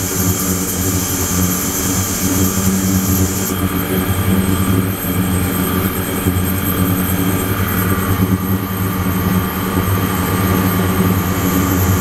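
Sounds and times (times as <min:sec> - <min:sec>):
high hiss: 0:00.0 - 0:03.7
ultrasonic cleaner buzzing hum: 0:00.0 - 0:07.6.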